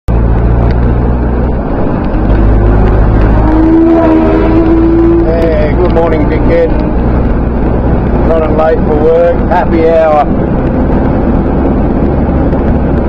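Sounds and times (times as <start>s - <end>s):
steady tone: 0.1s - 13.0s
vehicle engine and road rumble: 0.1s - 13.0s.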